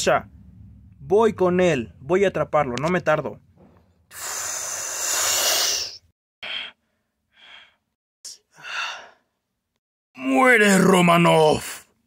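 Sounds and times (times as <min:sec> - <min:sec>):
short breathy puffs: 0:03.6 - 0:06.7.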